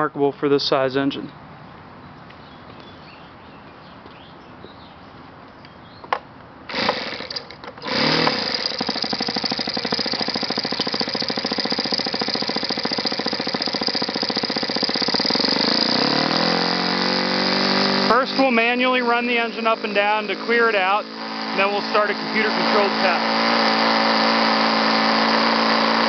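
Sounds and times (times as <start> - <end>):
model engine sputtering and running: 6.7 - 26.0.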